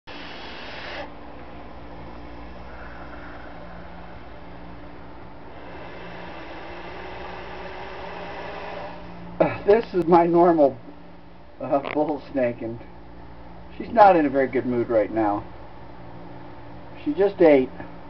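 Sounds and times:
low steady hum: 0:00.1 - 0:18.0
soft breathy noise: 0:02.0 - 0:05.3.

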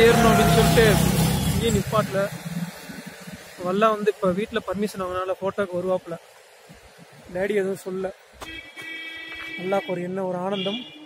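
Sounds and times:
man talking: 0:00.0 - 0:02.4, 0:03.6 - 0:06.2, 0:07.3 - 0:08.2, 0:09.6 - 0:10.9
vehicle engine running: 0:00.0 - 0:03.2.

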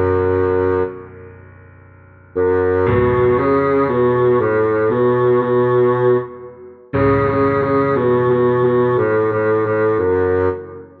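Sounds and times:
bassoon low note: 0:02.3 - 0:10.8.

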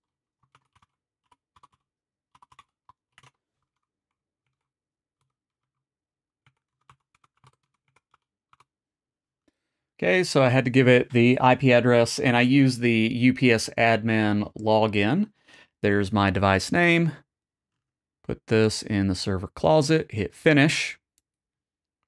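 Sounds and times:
faint keyboard typing: 0:00.0 - 0:05.8, 0:06.4 - 0:08.8.

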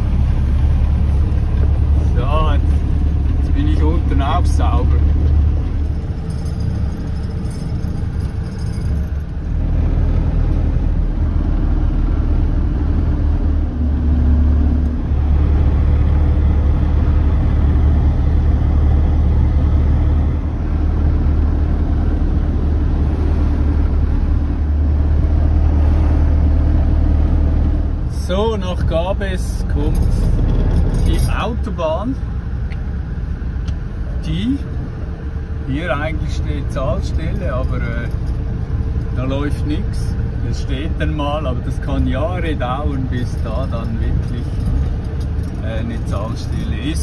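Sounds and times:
diesel engine drone: 0:00.0 - 0:47.0.

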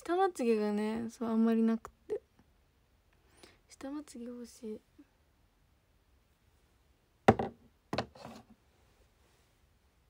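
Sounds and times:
object knocking when set down: 0:07.3 - 0:08.4.

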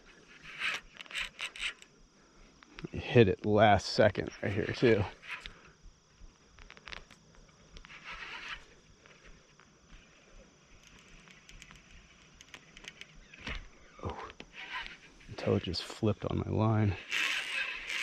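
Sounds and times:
fishing reel clicks and rustles: 0:00.0 - 0:01.9, 0:03.8 - 0:05.8, 0:06.5 - 0:15.9, 0:17.0 - 0:18.0.

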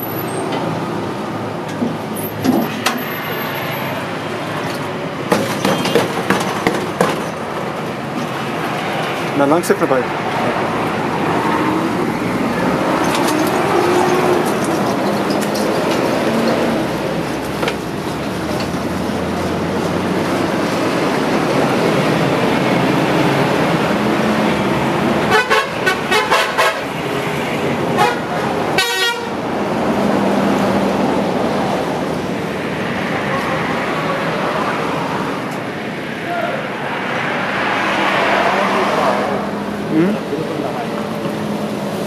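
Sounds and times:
traffic passing: 0:00.0 - 0:42.0.

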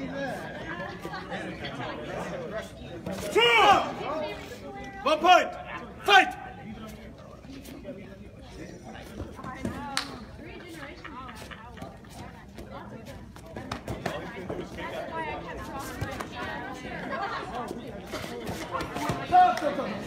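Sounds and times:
chatter of many voices: 0:00.0 - 0:20.0.

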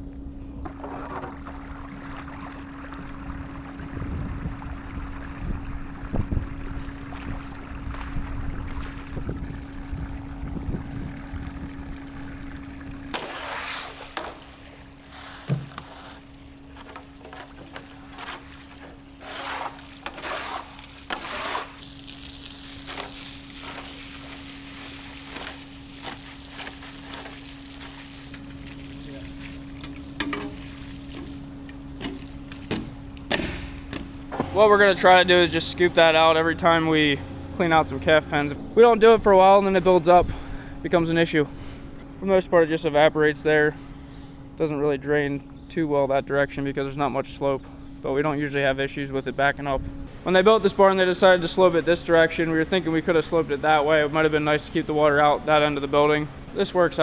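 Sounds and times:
faint steady hum: 0:00.0 - 0:57.0
water rushing out of drain pipe: 0:00.7 - 0:32.4
garden hose spraying water: 0:11.1 - 0:32.9
scraper pushed over wet concrete: 0:13.1 - 0:28.0.

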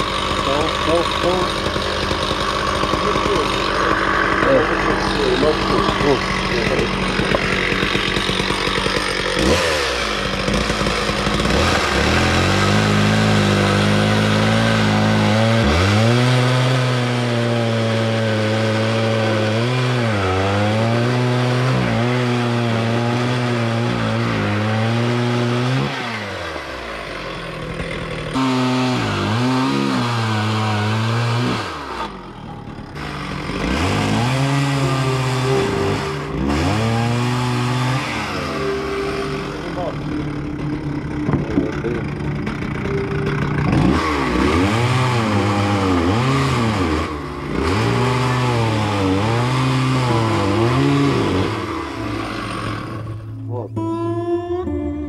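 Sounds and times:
chainsaw cutting wood: 0:00.0 - 0:53.6.

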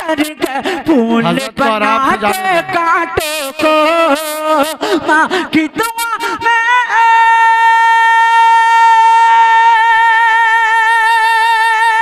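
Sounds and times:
man singing a long high note: 0:00.0 - 0:12.0.

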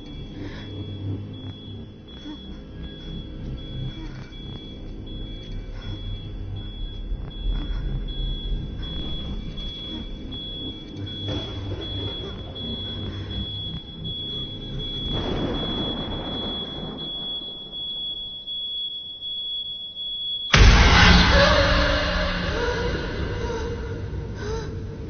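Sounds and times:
low rumbling drone: 0:00.0 - 0:18.6, 0:20.5 - 0:25.0
rushing noise: 0:20.5 - 0:25.0.

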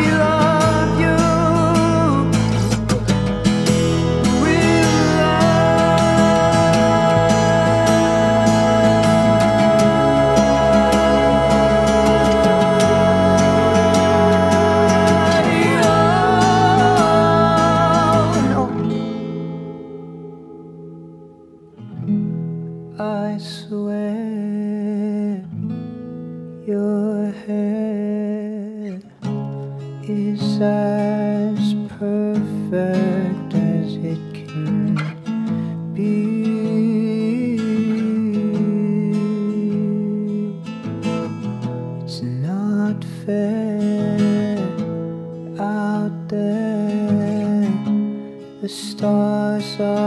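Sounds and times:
strummed acoustic guitar: 0:00.0 - 0:50.0.

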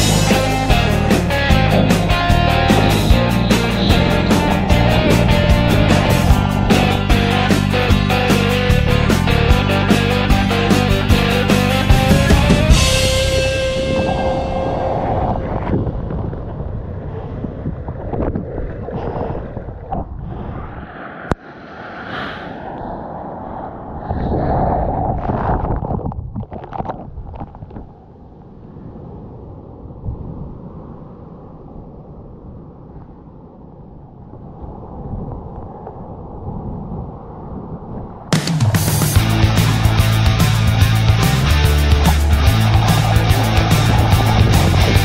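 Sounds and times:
muffled sea water and surf: 0:00.0 - 0:45.0.

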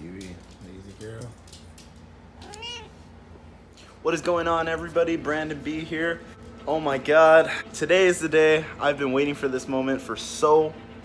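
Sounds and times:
cat meowing: 0:02.4 - 0:03.1.

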